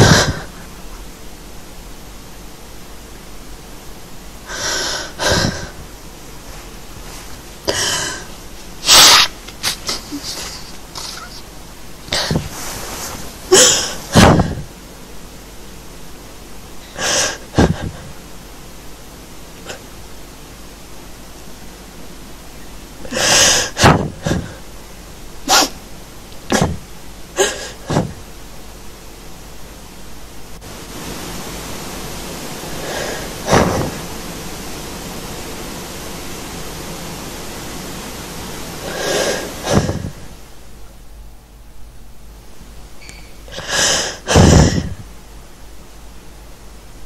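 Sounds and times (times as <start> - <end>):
steady background hiss: 0.0 - 47.0
person breathing sharply: 7.7 - 9.3.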